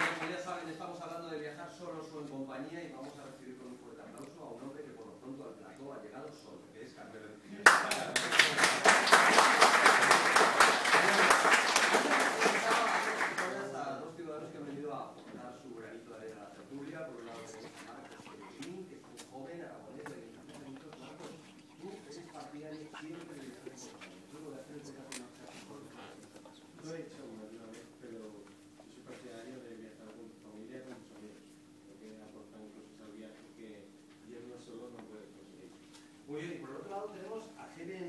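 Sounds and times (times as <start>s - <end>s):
studio audience applauding: 0.0s - 0.7s, 7.6s - 13.8s
steady low hum: 12.7s - 38.0s.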